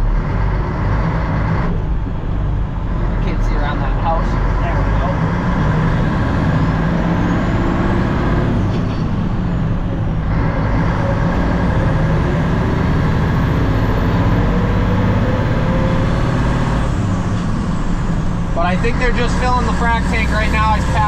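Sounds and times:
heavy truck engine from inside cab: 0.0s - 21.0s.

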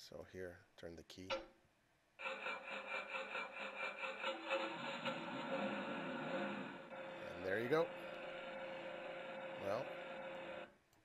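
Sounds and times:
steady electric hum: 4.5s - 10.8s.

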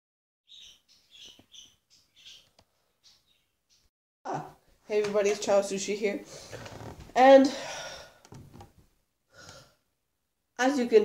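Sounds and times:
birds chirping faintly: 0.5s - 3.9s.

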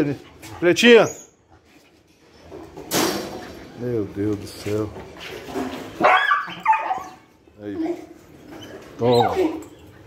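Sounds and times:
dogs barking and yelping: 5.9s - 7.4s, 8.5s - 10.0s.

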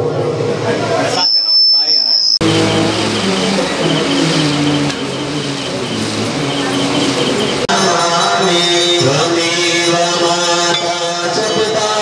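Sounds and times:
noisy background: 0.0s - 12.0s
rapid high bell ringing: 1.2s - 12.0s
chanted tones: 2.4s - 12.0s.

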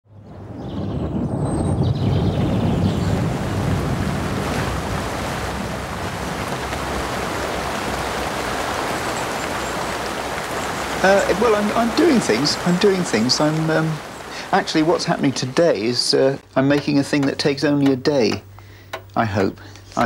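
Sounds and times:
deep rumble: 0.1s - 9.2s
heavy rain falling: 0.3s - 19.8s.

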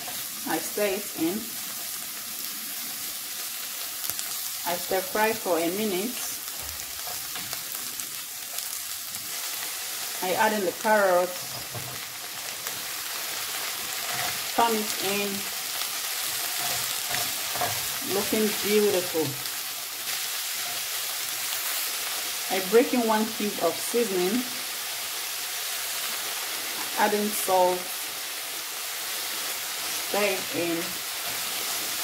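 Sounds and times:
vegetables sizzling in a pan: 0.0s - 32.0s.

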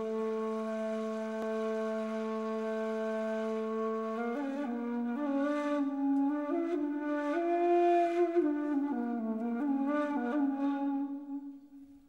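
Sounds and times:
reed flute long low note: 0.0s - 11.9s.

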